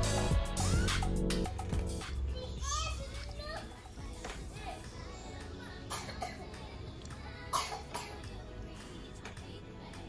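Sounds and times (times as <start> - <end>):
quiet background music: 0.0 - 10.0
children calling and chattering: 0.4 - 10.0.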